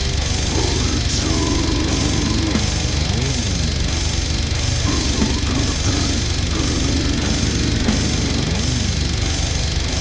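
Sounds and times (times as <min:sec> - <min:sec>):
heavy metal music: 0:00.0 - 0:10.0
low sliding bass note: 0:00.0 - 0:10.0.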